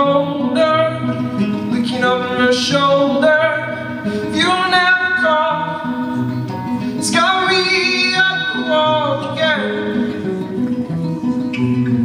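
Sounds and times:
man singing: 0.0 - 10.5
strummed acoustic guitar chords: 0.0 - 12.0.

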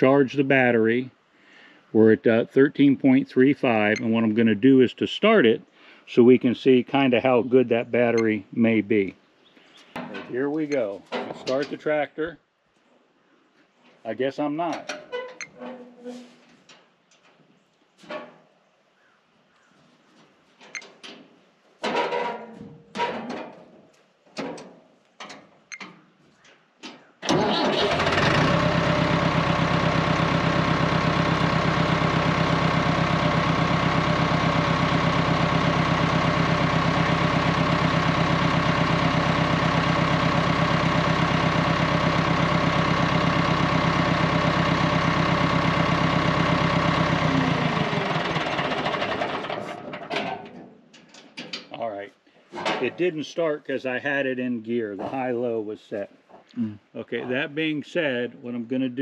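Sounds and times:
tractor diesel engine idling: 27.2 - 50.5.

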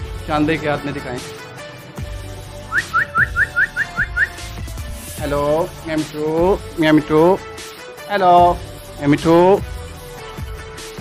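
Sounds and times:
background music: 0.0 - 11.0
parakeet whistling: 2.7 - 4.5.

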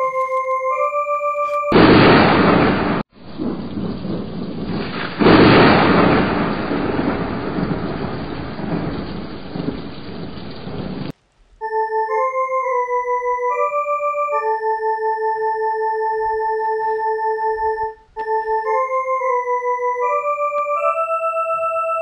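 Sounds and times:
thunder crashing and rumbling: 1.8 - 11.1.

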